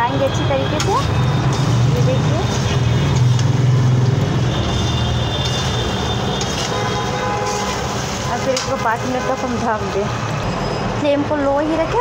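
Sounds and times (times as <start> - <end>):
metal spatula scraping a pan: 0.8 - 3.9, 4.6 - 9.6.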